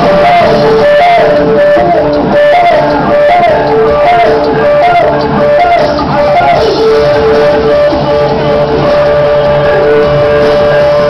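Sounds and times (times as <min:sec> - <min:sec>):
electronic rock band: 0:00.0 - 0:11.0
repeating synthesizer riff: 0:00.0 - 0:11.0.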